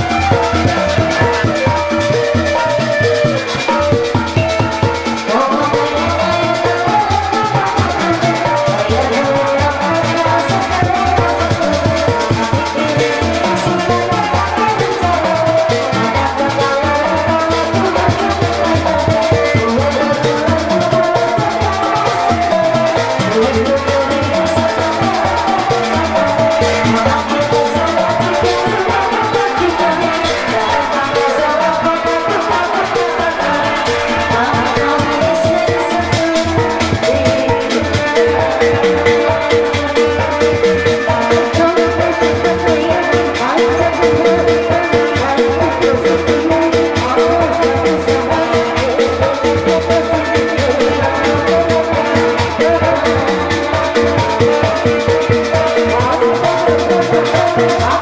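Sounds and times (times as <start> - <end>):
fast steady drumming: 0.0 - 58.0
wavering melodic lead: 0.0 - 58.0.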